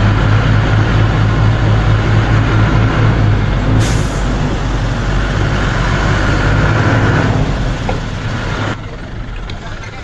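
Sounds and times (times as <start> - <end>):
truck engine drone: 0.0 - 10.0.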